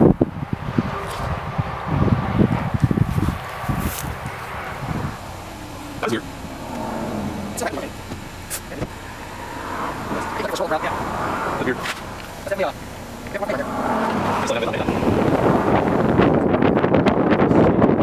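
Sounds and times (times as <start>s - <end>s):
low rumble: 0.0s - 17.2s
wind buffeting microphone: 0.0s - 18.0s
indistinct voices: 0.8s - 16.4s.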